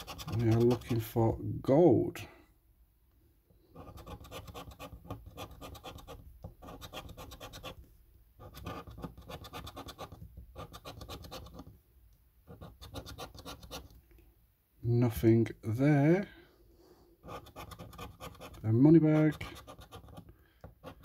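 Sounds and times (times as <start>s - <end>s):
scratch card being scraped: 0.0s - 1.1s, 3.7s - 7.8s, 8.4s - 11.7s, 12.5s - 14.0s, 17.2s - 21.0s.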